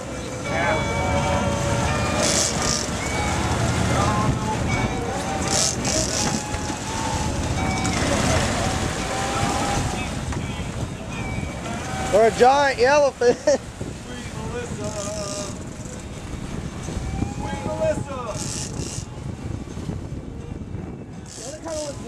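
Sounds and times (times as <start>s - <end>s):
propeller wash churning water: 0.0s - 19.4s, 21.3s - 22.0s
boat engines rumbling: 0.0s - 22.0s
wind on microphone: 0.0s - 22.0s.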